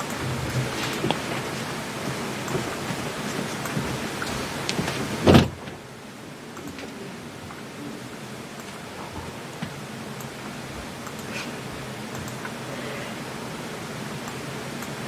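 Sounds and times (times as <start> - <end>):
studio room hiss: 0.0 - 15.0
loud thump: 5.2 - 5.8.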